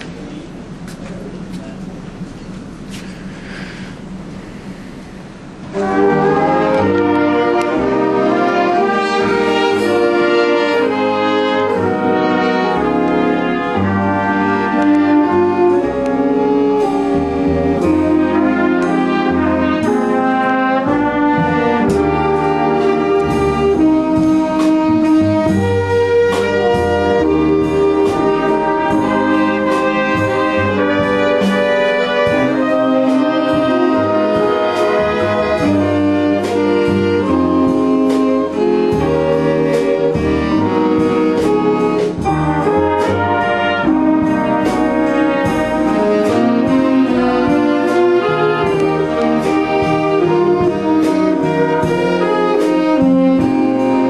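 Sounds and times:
jazz band playing a ballad: 0.0s - 54.0s.

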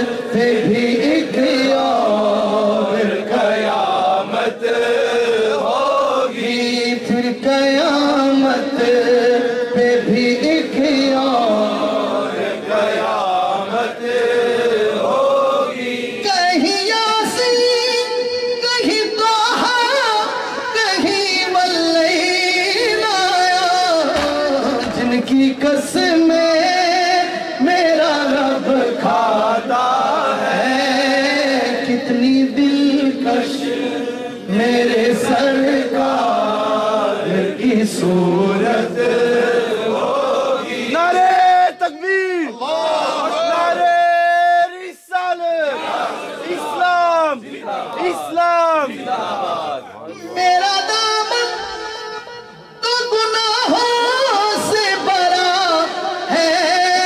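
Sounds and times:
man singing devotional verse: 0.0s - 42.7s, 49.8s - 57.0s
man chanting unaccompanied: 0.0s - 57.0s.

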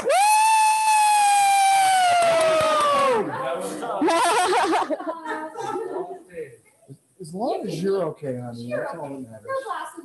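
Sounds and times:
person whooping: 0.0s - 3.3s.

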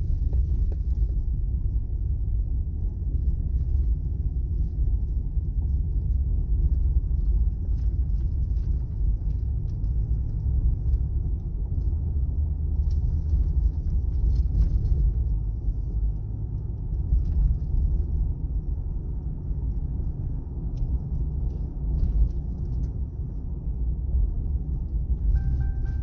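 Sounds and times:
car engine rumble: 0.0s - 26.0s
road noise: 0.0s - 26.0s.

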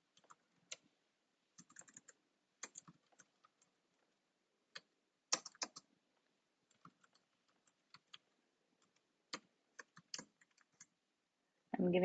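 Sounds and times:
typing on computer keyboard: 0.1s - 0.8s, 1.6s - 4.1s, 4.7s - 5.9s, 6.7s - 11.0s.

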